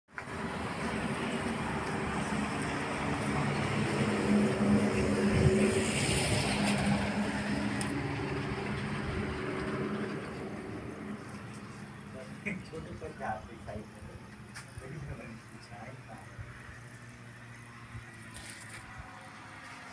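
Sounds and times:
vehicle engine running: 0:00.2 - 0:19.9.

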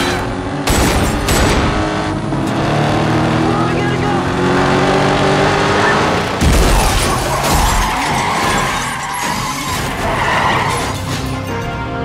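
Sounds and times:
car engine revving: 0:00.0 - 0:09.0.

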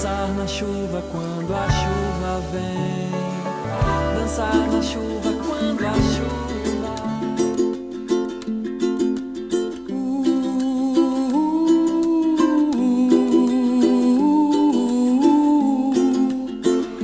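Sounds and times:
hummed melody: 0:00.0 - 0:17.0
plucked string accompaniment: 0:00.0 - 0:17.0.

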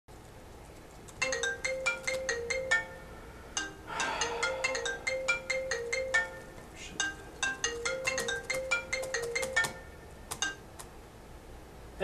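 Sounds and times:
phone ringtone melody: 0:01.2 - 0:10.6.

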